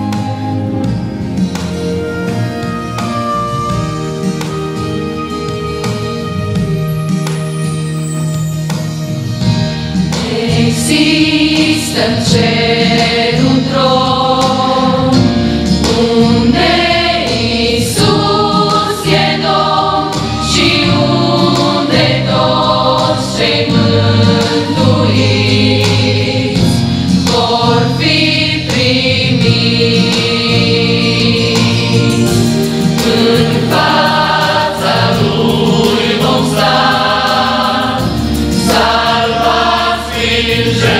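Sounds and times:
choir singing a hymn: 10.0 - 40.9.

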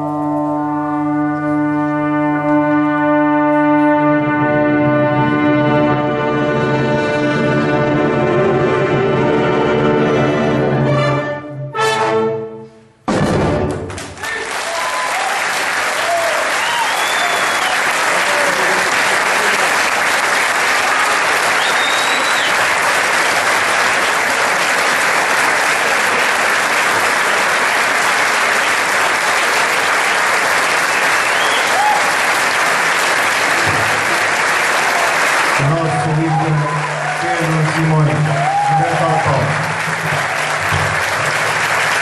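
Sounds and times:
audience applauding: 13.7 - 42.0.

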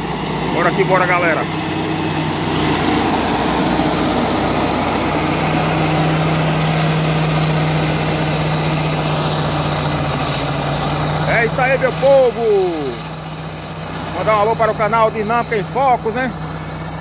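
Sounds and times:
diesel engine droning under load: 0.0 - 17.0.

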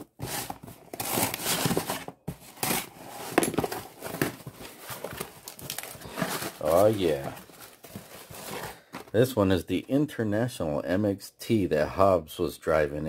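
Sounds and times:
plastic wrapping crinkling: 2.6 - 9.1.

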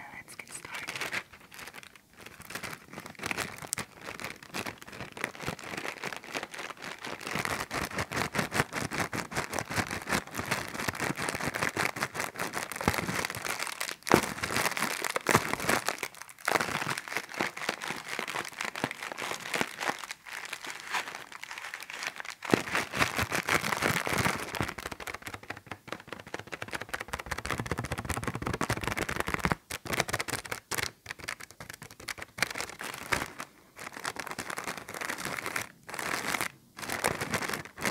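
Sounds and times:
plastic bag crinkling: 0.0 - 37.9.

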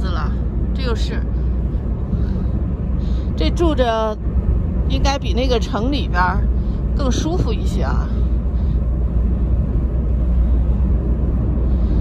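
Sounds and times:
car tyres and engine rumble: 0.0 - 12.0.

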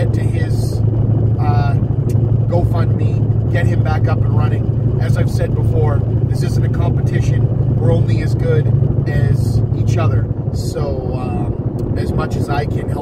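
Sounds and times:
man talking: 0.0 - 0.8, 1.4 - 13.0
car driving drone: 0.0 - 13.0.

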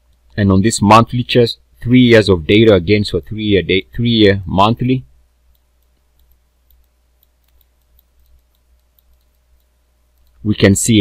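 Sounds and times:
low electrical hum: 0.0 - 11.0
light mouse clicks: 5.5 - 10.4.

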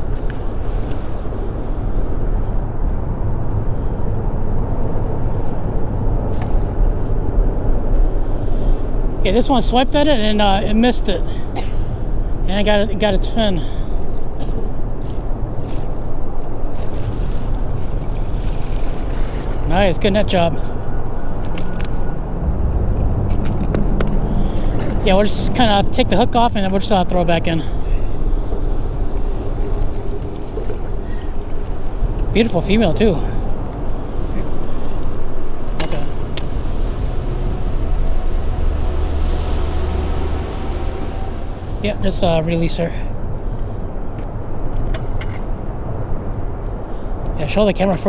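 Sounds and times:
wind rumble on microphone: 0.0 - 48.0
water splashing: 16.6 - 20.4.

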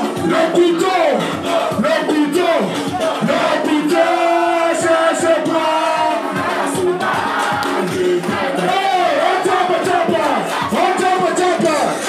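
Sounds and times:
crowd shouting and singing along: 0.0 - 12.0
loud live music: 0.0 - 12.0.

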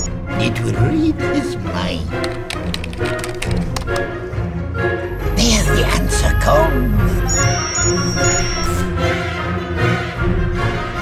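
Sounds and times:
background music: 0.0 - 11.0
keyboard typing: 2.1 - 4.1, 7.2 - 8.9.

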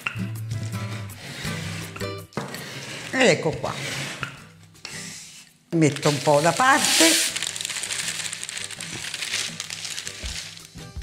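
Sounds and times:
crumbs sliding into glass bowl: 2.6 - 4.3
baking paper crinkling: 5.8 - 11.0.

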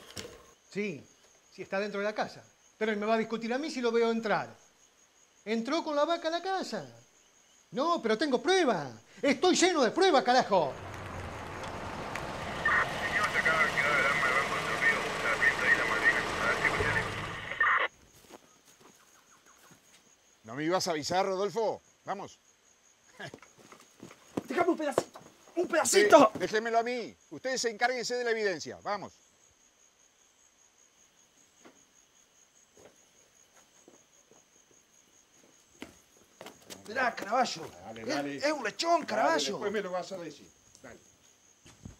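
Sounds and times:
crickets trilling: 0.0 - 41.9
car engine running: 10.5 - 17.9.

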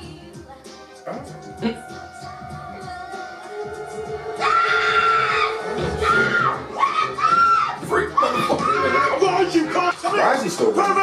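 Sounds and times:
film soundtrack music: 1.0 - 11.0.

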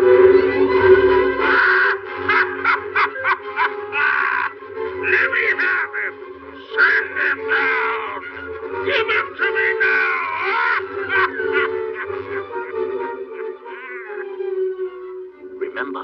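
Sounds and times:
sustained orchestral chords: 0.0 - 16.0
cartoon cat cackling: 1.4 - 8.4, 9.6 - 14.3.

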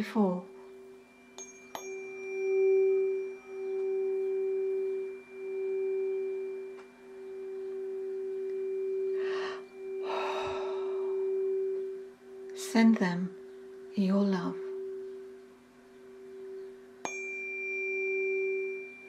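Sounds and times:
tuning fork ringing: 0.0 - 19.0.

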